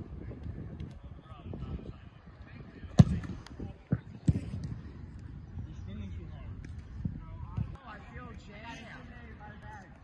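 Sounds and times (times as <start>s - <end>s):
football kick thump: 3.0s - 3.3s.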